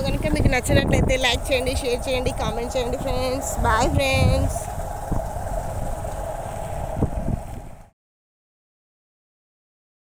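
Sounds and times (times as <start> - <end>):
motorbike engine drone: 0.0 - 7.9
wind rumbling on microphone: 0.0 - 8.0.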